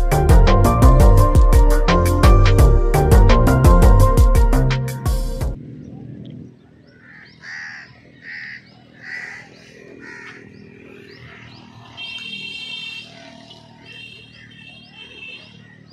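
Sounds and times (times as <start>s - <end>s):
birds chirping: 5.6s - 15.9s
crow cawing: 6.9s - 14.5s
buzzy bird call: 6.9s - 15.9s.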